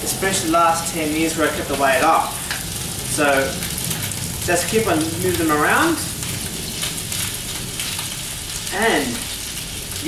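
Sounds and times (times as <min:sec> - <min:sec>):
meatballs sizzling in frying pan: 0:00.0 - 0:10.0.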